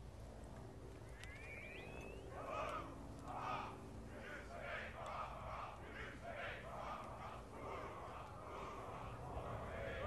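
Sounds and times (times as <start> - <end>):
gliding bird chirp: 1.1 - 2.3.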